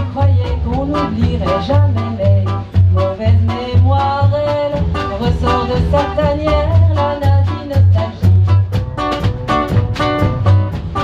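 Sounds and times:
acoustic guitar: 0.0s - 11.0s
double bass: 0.0s - 11.0s
drums: 0.0s - 11.0s.

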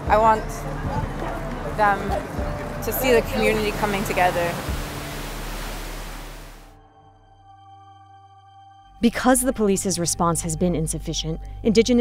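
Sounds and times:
soft sustained music tones: 0.0s - 12.0s
background hiss: 1.9s - 6.6s.

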